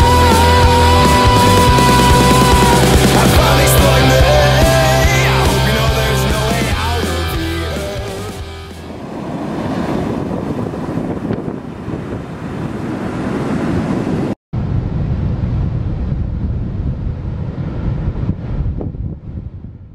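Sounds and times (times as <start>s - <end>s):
ocean waves breaking: 0.0s - 14.4s
wind buffeting microphone: 8.7s - 19.9s.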